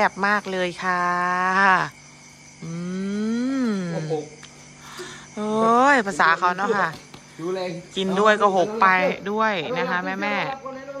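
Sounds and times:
person humming: 0:02.6 - 0:04.3.

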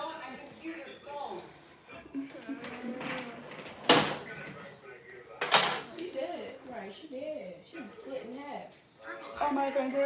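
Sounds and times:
faint voices: 0:00.0 - 0:06.5.

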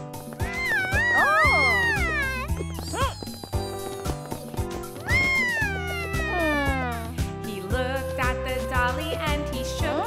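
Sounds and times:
cartoon background music: 0:00.0 - 0:10.0
child whining cry sliding down: 0:00.4 - 0:03.4, 0:05.0 - 0:06.9.

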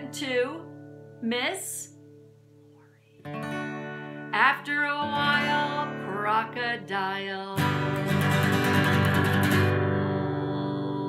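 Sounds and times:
acoustic guitar strumming: 0:03.2 - 0:11.0
woman singing: 0:04.3 - 0:08.0, 0:08.9 - 0:11.0.

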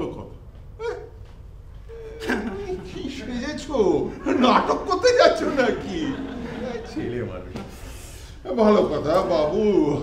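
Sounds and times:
man speaking: 0:00.0 - 0:01.2, 0:01.9 - 0:07.7, 0:08.4 - 0:10.0
man chuckling: 0:01.9 - 0:03.1.

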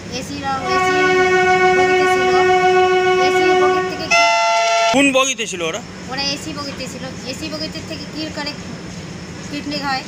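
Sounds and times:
train horn long note: 0:00.6 - 0:05.0.

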